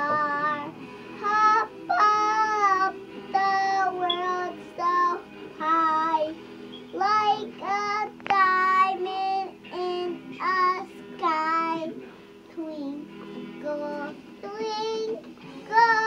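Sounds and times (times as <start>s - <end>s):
child singing: 0.0s - 16.0s.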